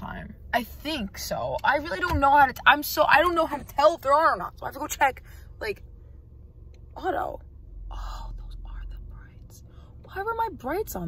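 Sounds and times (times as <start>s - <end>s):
low rumble: 0.0s - 11.0s
woman whispering: 8.0s - 9.6s.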